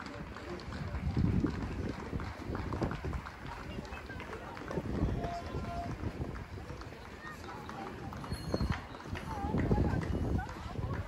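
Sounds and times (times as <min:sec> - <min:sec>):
outdoor park hum: 0:00.0 - 0:11.0
people's voices: 0:00.0 - 0:11.0.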